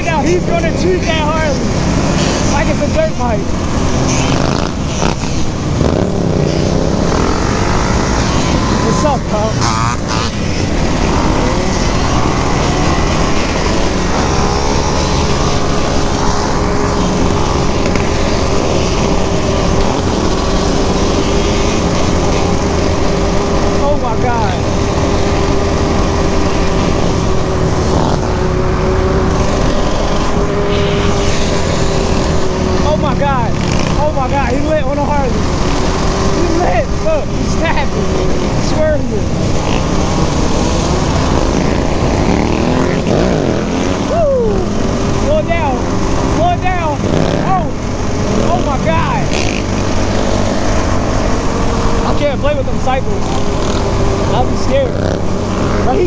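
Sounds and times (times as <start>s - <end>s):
voices: 0.0s - 4.4s, 6.6s - 10.1s, 32.7s - 40.6s, 43.9s - 49.7s, 51.0s - 56.0s
dirt bike engines: 0.0s - 56.0s.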